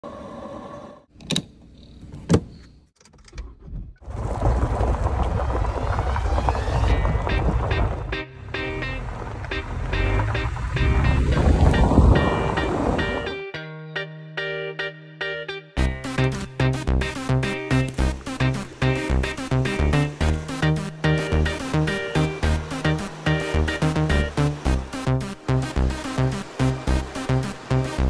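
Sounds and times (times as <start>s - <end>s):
vehicle driving on gravel: 4.0s - 12.9s
rhythmic music: 6.8s - 28.0s.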